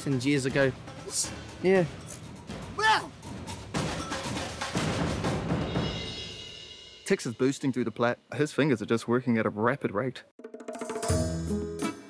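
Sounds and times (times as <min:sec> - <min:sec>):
percussive soundtrack music: 0:00.0 - 0:07.1, 0:10.4 - 0:12.0.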